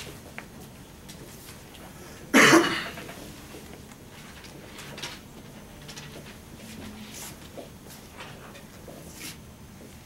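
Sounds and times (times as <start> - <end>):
short cough: 2.3 - 3.1.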